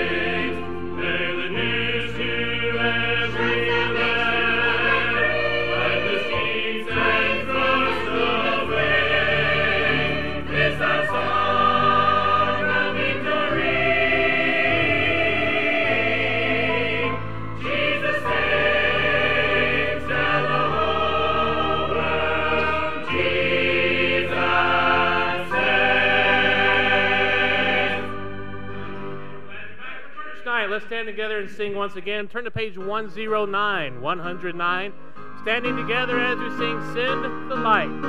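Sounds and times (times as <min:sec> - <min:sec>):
mixed choir singing: 0:00.0 - 0:28.6, 0:29.4 - 0:30.4.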